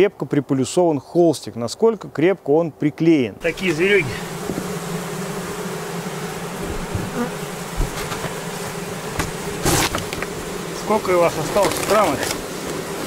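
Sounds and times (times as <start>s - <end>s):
bees buzzing: 3.4s - 13.0s.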